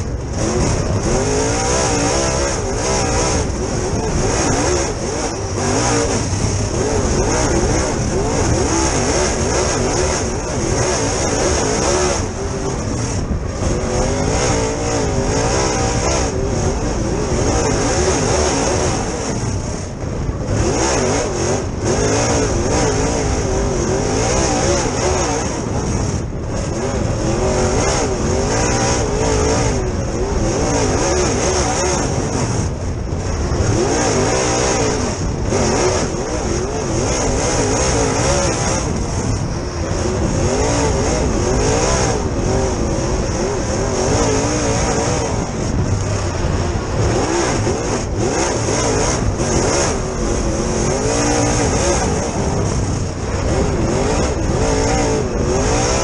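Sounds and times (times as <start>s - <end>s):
race engine revving: 0.0s - 56.0s.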